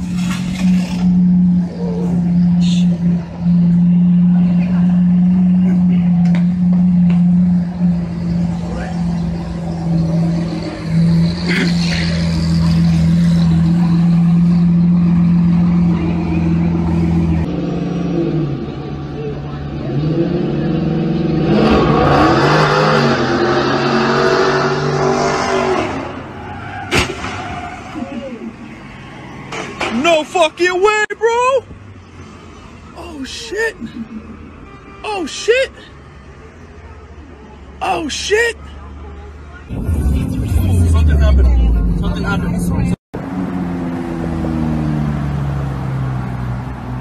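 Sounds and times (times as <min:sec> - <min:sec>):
engines revving: 0:00.0 - 0:30.3, 0:39.7 - 0:47.0
sharp crack: 0:26.9 - 0:27.6.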